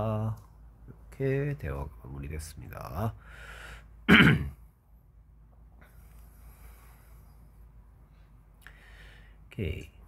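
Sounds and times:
person clearing throat: 0:04.1 - 0:04.6.

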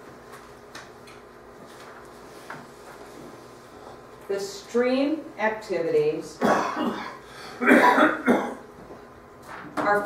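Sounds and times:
woman coughing: 0:06.4 - 0:08.6.

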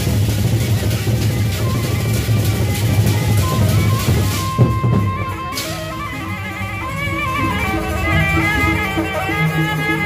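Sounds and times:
barrel drums beating: 0:00.0 - 0:10.0
clashing cymbals: 0:00.0 - 0:10.0.

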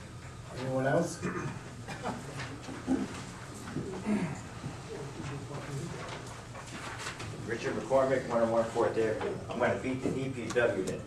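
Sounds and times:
low room hum: 0:00.0 - 0:11.0
people chuckling and murmuring: 0:01.5 - 0:06.2.

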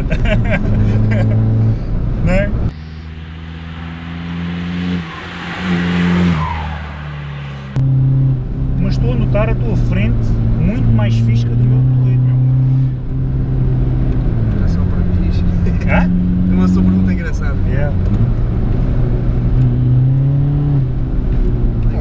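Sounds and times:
diesel engine drone in cabin: 0:00.0 - 0:05.5
car driving past: 0:02.7 - 0:09.0.

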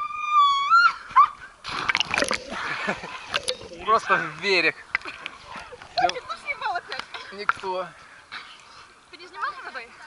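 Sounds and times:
girl screaming: 0:00.0 - 0:01.4
body splashing into water: 0:01.7 - 0:03.8.

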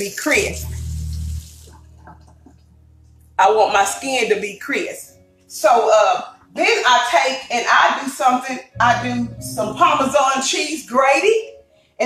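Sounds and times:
steady hiss: 0:00.3 - 0:02.0.

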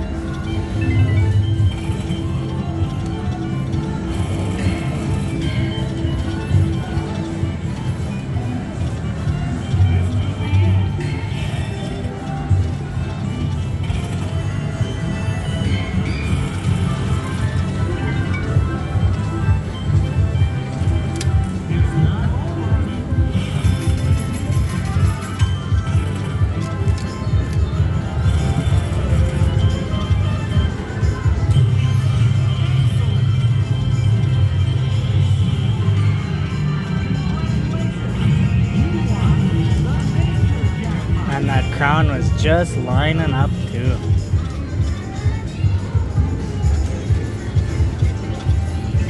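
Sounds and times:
slot machine music with low bass: 0:00.0 - 0:49.0.

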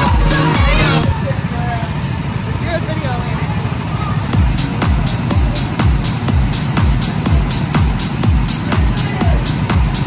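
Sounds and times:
music with steady beat: 0:00.0 - 0:01.1, 0:04.3 - 0:10.0
go-kart engines droning: 0:00.0 - 0:10.0.

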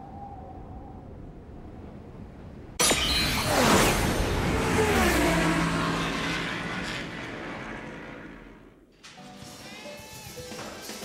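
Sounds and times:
racing engine whooshing past: 0:03.4 - 0:08.8.

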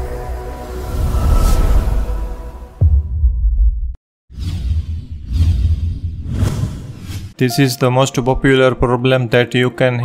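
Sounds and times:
whooshes sweeping up: 0:00.4 - 0:03.4, 0:04.3 - 0:07.4.

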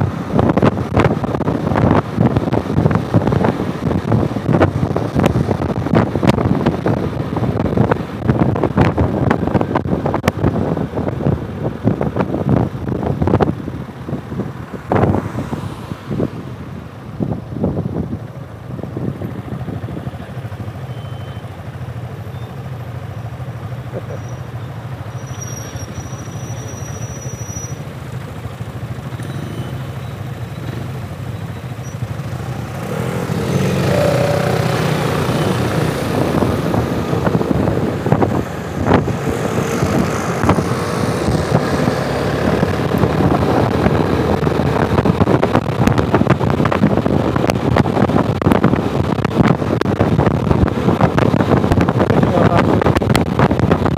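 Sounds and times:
wind buffeting microphone: 0:00.0 - 0:20.3, 0:32.1 - 0:53.9
scooter engine: 0:18.1 - 0:51.9.

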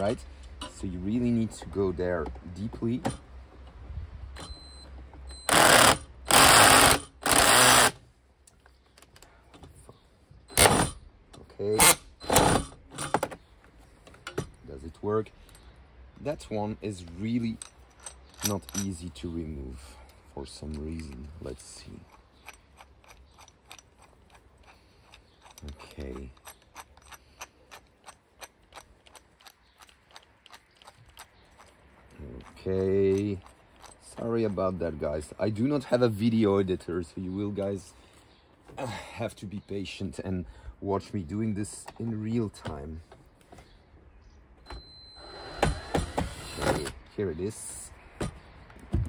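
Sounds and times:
cordless drill motor whining: 0:05.4 - 0:08.0.

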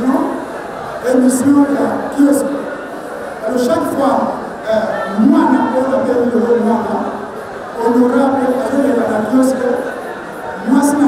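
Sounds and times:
man speaking into microphones: 0:00.0 - 0:11.0.

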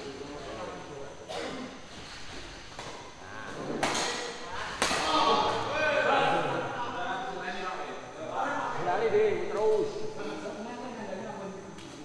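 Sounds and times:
people's voices in a hall: 0:00.0 - 0:12.0
racquets hitting shuttlecock: 0:03.7 - 0:05.2.

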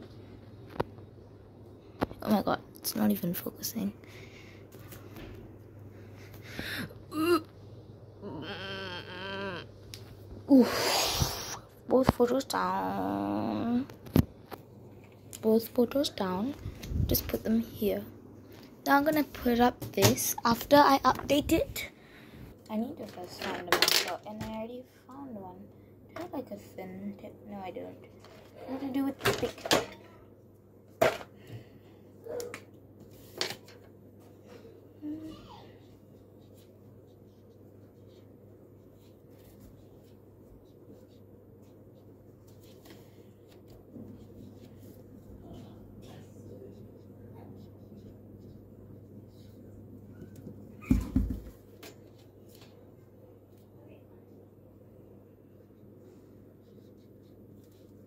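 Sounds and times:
girl straining whine: 0:06.6 - 0:07.5, 0:08.2 - 0:09.8
steady low hum: 0:33.8 - 0:58.0
pen scratching on paper: 0:36.2 - 0:42.8, 0:46.6 - 0:48.6.

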